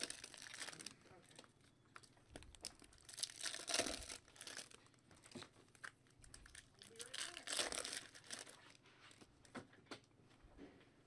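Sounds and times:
foil wrappers crinkling: 0.0 - 9.3.

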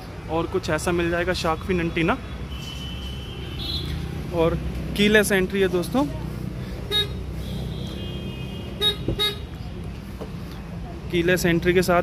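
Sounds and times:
car horn chirps: 6.9 - 9.5.

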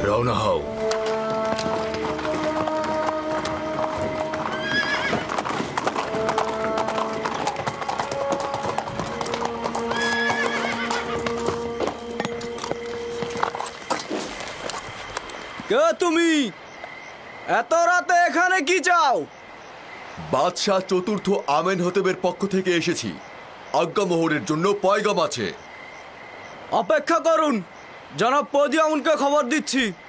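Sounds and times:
background music of held notes: 0.0 - 5.4
hooves clip-clopping on stone: 0.0 - 15.8
horse whinnying: 3.4 - 13.6.

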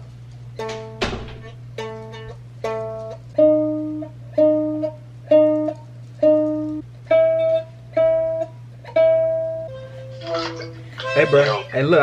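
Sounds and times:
steady low hum: 0.0 - 12.0
ukulele plucked chords: 1.7 - 11.6.

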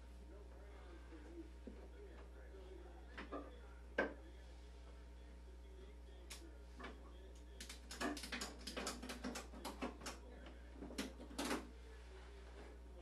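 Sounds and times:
steady low hum: 0.0 - 13.0
sharp clicks and knocks: 7.6 - 10.2.

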